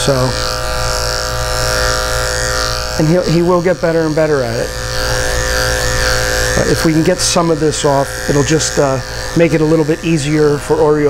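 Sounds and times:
electric clipper buzzing: 0.0 - 11.0.

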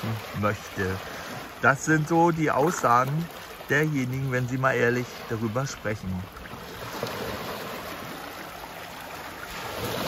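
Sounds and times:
waves lapping over rocks: 0.0 - 10.0.

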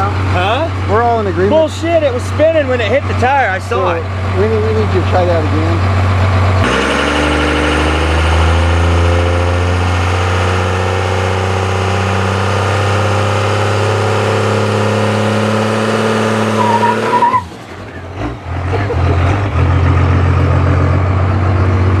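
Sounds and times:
diesel pickup engine revving: 0.0 - 22.0.

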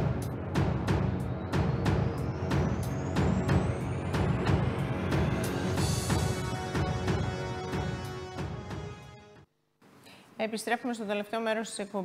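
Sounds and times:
heavy low end bass: 0.0 - 7.4
driving percussion beat: 0.0 - 9.1.

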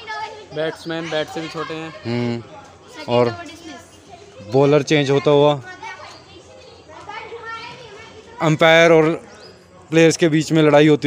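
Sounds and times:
distant voices calling out: 0.0 - 10.2.

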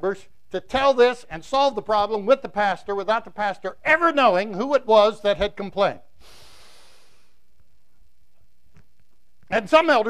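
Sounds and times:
man drawing a breath: 6.2 - 7.4.

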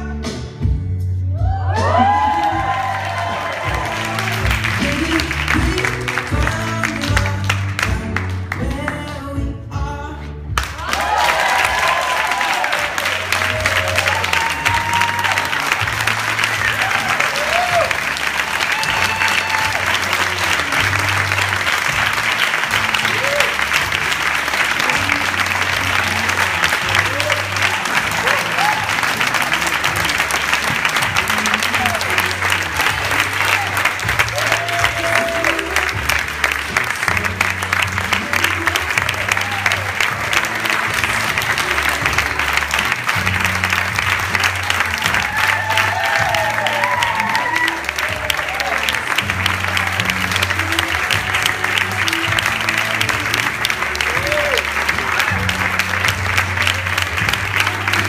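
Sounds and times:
music with repeating bass line: 0.0 - 12.2, 12.8 - 58.0
audience clapping: 1.7 - 9.4, 10.5 - 58.0.

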